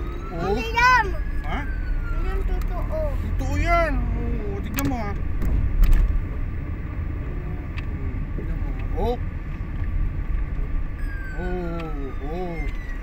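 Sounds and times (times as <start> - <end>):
engine and tyre rumble: 0.0 - 13.0.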